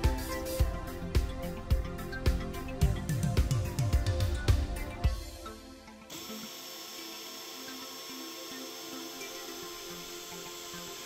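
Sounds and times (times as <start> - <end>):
background music: 0.0 - 11.0
power drill whining: 6.1 - 11.0.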